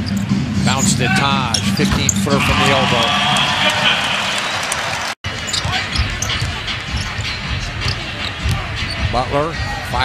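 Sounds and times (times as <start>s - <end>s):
arena crowd noise: 1.0s - 10.0s.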